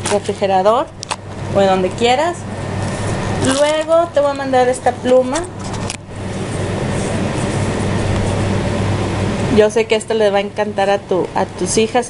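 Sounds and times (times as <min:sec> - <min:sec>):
hum: 0:00.0 - 0:12.0.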